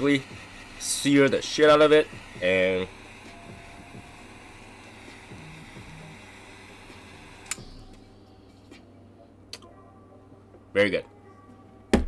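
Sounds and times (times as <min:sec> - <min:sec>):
torch lighter flame hissing: 0:00.0 - 0:08.7
lighter click: 0:07.3 - 0:08.0.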